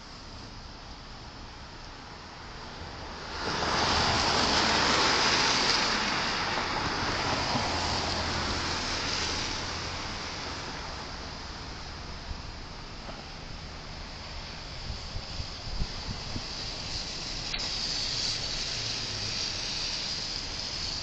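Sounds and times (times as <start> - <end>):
car passing by: 2.1 - 21.0.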